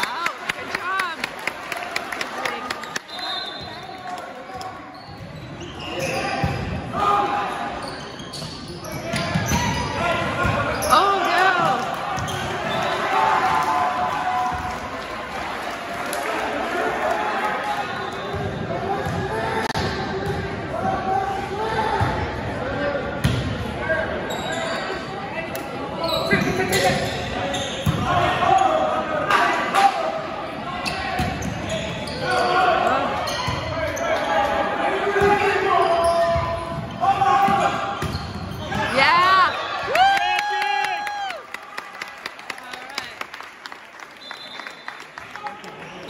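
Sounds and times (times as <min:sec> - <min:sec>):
crowd and player voices: 0:00.0 - 0:46.0.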